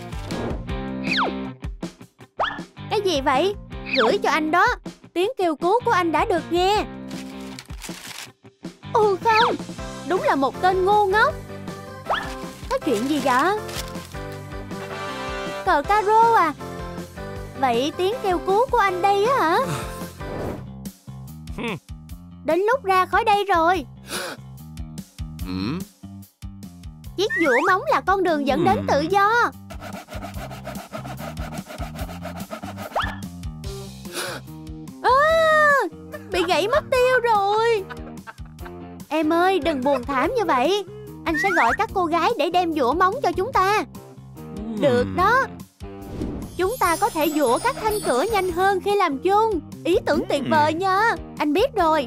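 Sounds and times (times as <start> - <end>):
background music: 0.0 - 52.0
paper rustling: 7.1 - 8.3, 12.1 - 14.2
nail file rasping on steel bar: 29.5 - 33.2.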